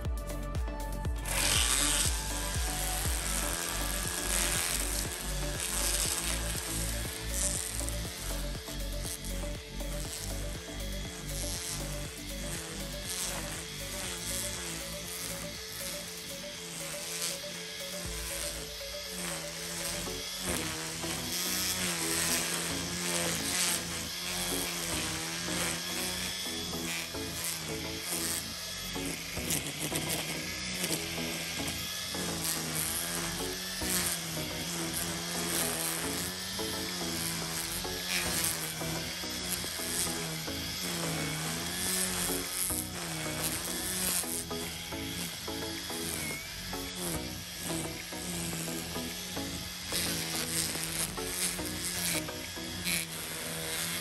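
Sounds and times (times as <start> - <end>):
background music: 0.0 - 54.0
string trimmer cutting grass: 0.0 - 54.0.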